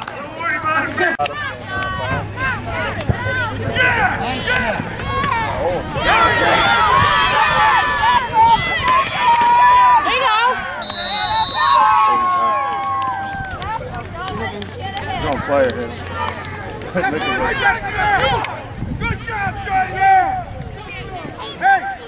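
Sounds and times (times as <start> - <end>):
spectators shouting and cheering: 0.0 - 22.0
referee's whistle: 10.8 - 12.1.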